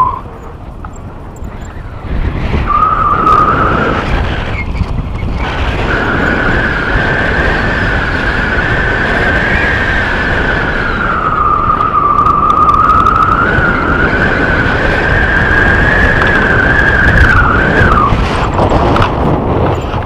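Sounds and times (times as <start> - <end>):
high wavering whistle: 0.0 - 0.4, 2.6 - 3.9, 10.7 - 18.2
wind buffeting microphone: 0.0 - 20.0.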